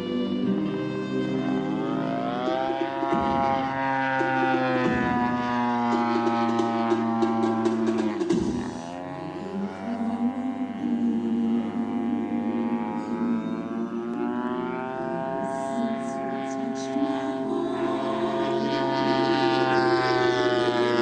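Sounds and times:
model airplane engine: 0.0 - 21.0
music with steady drone: 0.0 - 21.0.

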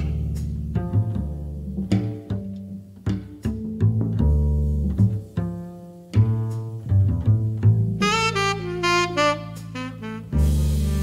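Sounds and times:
double bass plucked: 0.0 - 11.0
light cymbal and drum strokes: 0.0 - 11.0.

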